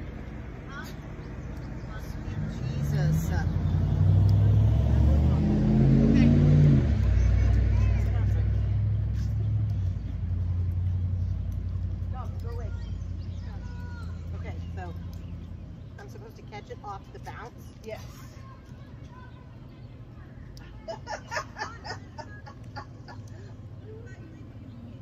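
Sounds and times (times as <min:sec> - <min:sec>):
car engine passing by: 0:01.8 - 0:12.4.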